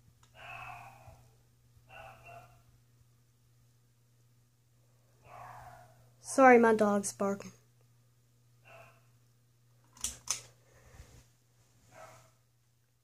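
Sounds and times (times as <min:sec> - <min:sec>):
steady low hum: 0:00.0 - 0:13.0
dog barking: 0:01.9 - 0:02.6, 0:05.2 - 0:06.0, 0:08.6 - 0:09.1, 0:11.9 - 0:12.4.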